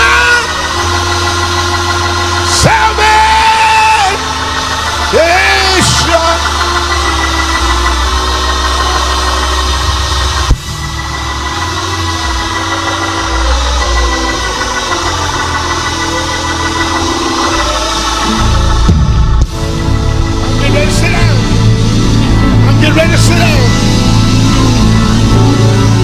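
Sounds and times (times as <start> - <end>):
deep bass line: 0.0 - 26.0
keyboard chords: 0.0 - 26.0.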